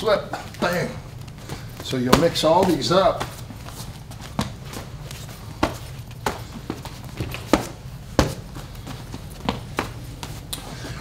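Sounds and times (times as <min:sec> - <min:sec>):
boxing gloves slapping: 0:01.2 - 0:10.6.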